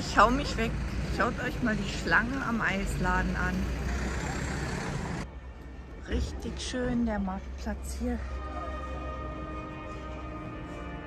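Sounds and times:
street noise hiss and rumble: 0.0s - 11.0s.

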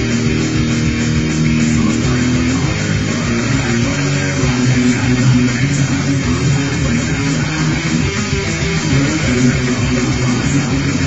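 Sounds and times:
electric guitar metal riff: 0.0s - 11.0s.

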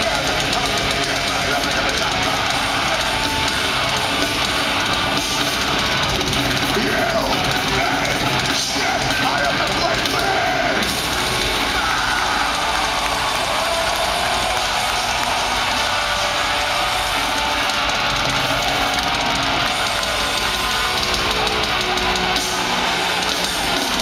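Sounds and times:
crowd shouting: 0.0s - 24.0s
heavy metal band playing live: 0.0s - 24.0s.

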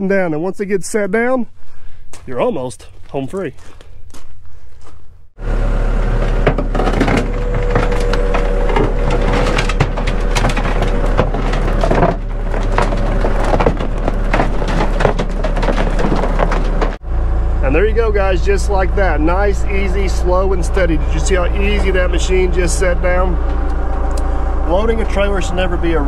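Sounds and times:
excavator engine hum: 5.4s - 26.0s
timber planks cracking and creaking: 6.2s - 17.0s.

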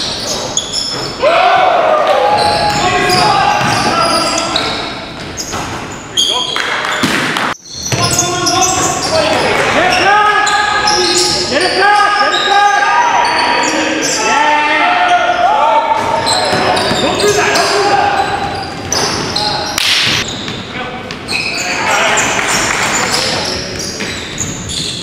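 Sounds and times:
sneaker squeaks: 0.0s - 1.2s, 2.2s - 14.4s, 15.0s - 25.0s
players calling out: 0.2s - 5.6s, 7.7s - 25.0s
basketball bouncing: 2.6s - 3.9s.

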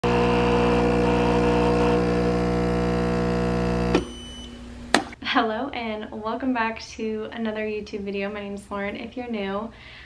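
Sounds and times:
espresso machine pump humming: 0.0s - 4.1s.

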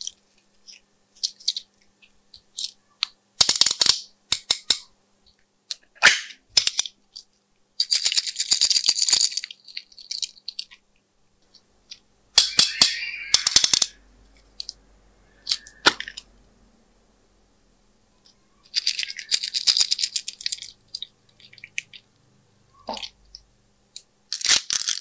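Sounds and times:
plastic charms clicking and rattling: 6.6s - 10.8s, 18.6s - 22.0s, 23.9s - 25.0s.

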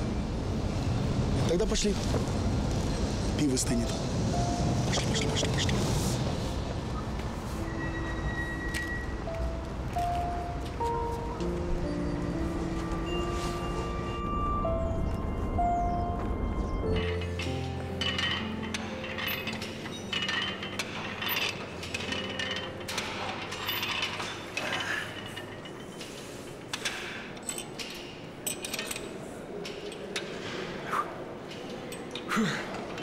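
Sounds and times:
music: 3.4s - 25.1s
weight machine metallic clinks: 16.9s - 30.3s.

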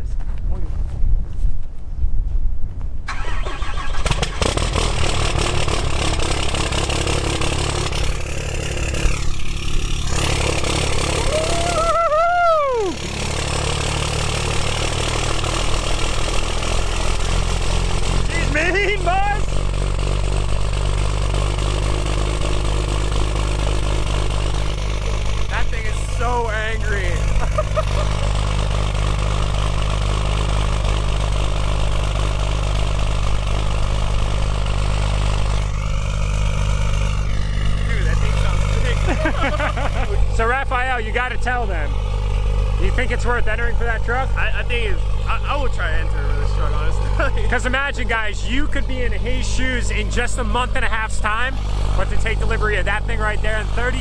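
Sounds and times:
diesel engine cranking: 3.1s - 54.0s
diesel engine idling: 3.1s - 54.0s.

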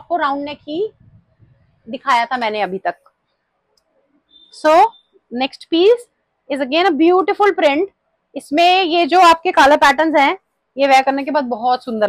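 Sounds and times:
faint high whistle-like tone: 4.3s - 5.2s.

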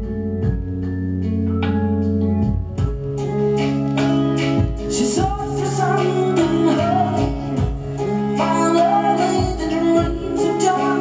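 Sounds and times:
electric guitars strumming: 0.0s - 11.0s
keyboard chords: 0.0s - 11.0s.

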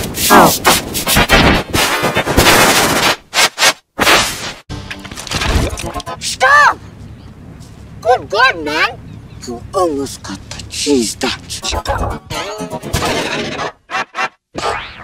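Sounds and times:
harsh crackling bursts: 0.2s - 6.2s
distorted voice: 10.3s - 14.8s
warbling voice-like sound: 11.5s - 15.0s.

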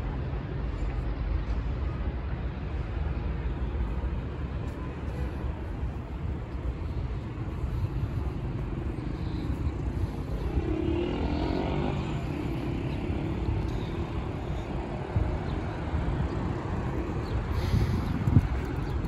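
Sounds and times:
rumble of cars: 0.0s - 19.0s
car engine passing: 10.1s - 13.6s.

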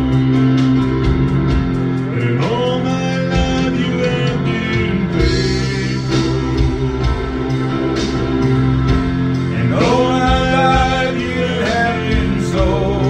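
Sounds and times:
gospel song: 0.0s - 13.0s
person singing: 2.0s - 7.6s, 9.4s - 13.0s.

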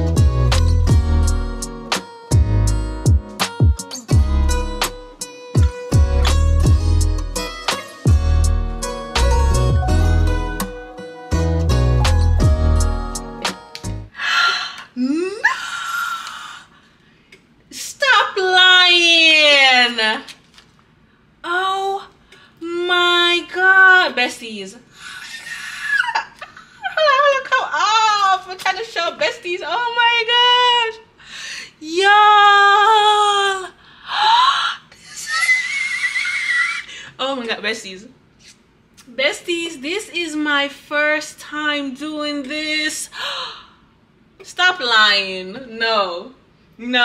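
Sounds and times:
woman squealing: 14.4s - 16.7s, 25.1s - 28.0s, 32.1s - 37.0s
woman squealing with delight: 34.2s - 36.9s.

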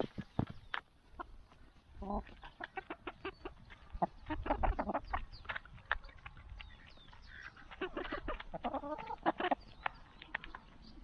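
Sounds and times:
hens clucking softly: 0.0s - 11.0s.

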